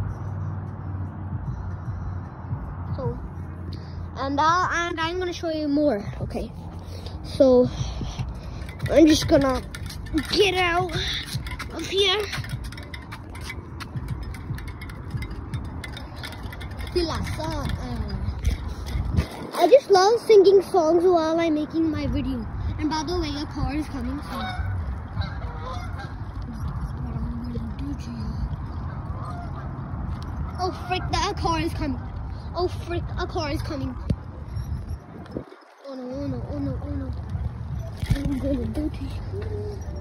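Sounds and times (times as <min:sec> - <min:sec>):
bicycle tyres rumbling on concrete: 0:04.6 - 0:40.0
wind on microphone: 0:06.1 - 0:40.0
light clicking and rattling: 0:08.0 - 0:19.7.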